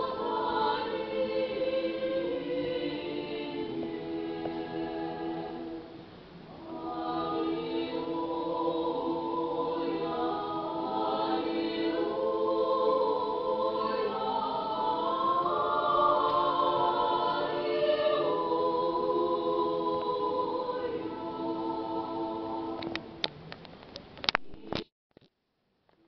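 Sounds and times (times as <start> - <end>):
choir singing a cappella: 0.0 - 23.2.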